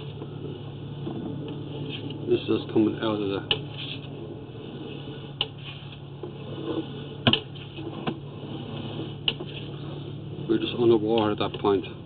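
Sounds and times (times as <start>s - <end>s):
electrical hum and hiss: 0.0s - 12.0s.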